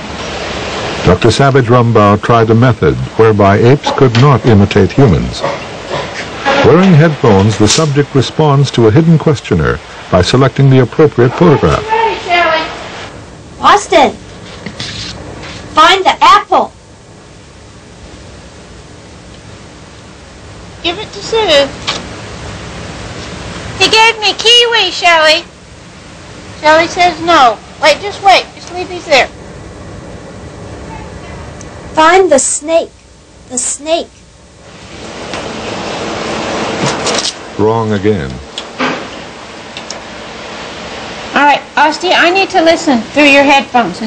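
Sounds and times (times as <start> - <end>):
background hiss: 0.0 - 44.0.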